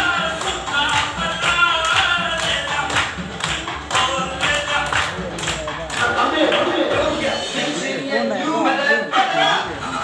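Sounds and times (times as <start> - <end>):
dance song with sung vocal: 0.0 - 10.0.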